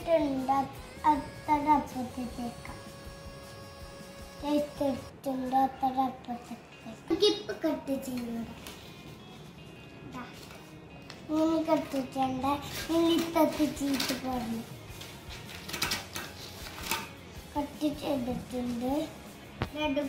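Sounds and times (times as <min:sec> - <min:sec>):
young child's voice: 0:00.0 - 0:02.8, 0:04.4 - 0:08.6, 0:11.3 - 0:14.7, 0:17.5 - 0:20.0
scissors cutting paper: 0:10.4 - 0:17.1.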